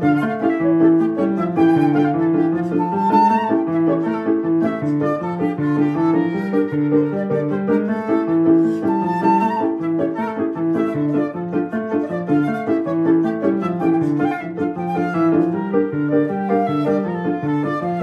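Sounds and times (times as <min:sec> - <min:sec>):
flute melody: 0:00.0 - 0:18.0
piano accompaniment: 0:00.0 - 0:18.0.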